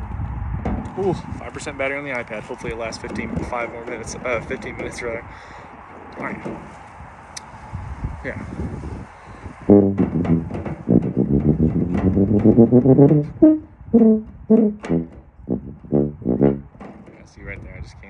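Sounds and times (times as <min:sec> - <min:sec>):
tuba playing: 0:09.7 - 0:16.8.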